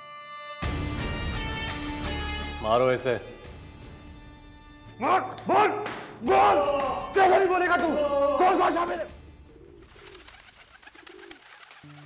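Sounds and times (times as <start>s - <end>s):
music: 0.0s - 12.0s
pigeons cooing: 9.3s - 12.0s
wings fluttering: 9.5s - 12.0s.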